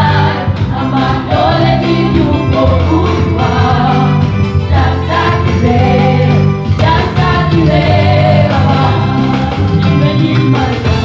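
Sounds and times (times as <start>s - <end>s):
group singing a praise song: 0.0s - 11.0s
instrumental accompaniment: 0.0s - 11.0s
steady bass line: 0.0s - 11.0s.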